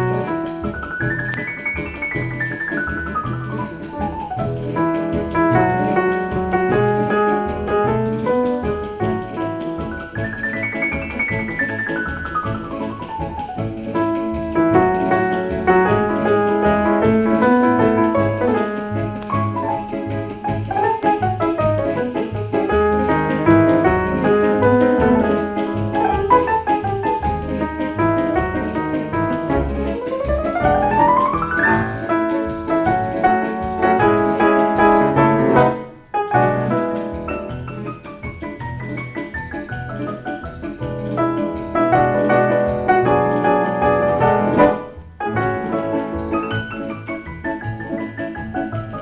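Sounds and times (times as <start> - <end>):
latin piano with rhythm section: 0.0 - 49.0.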